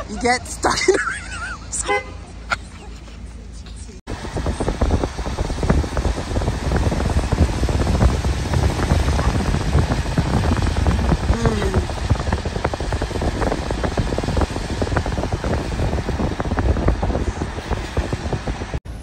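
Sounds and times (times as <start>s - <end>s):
car road noise rumble: 0.0s - 19.0s.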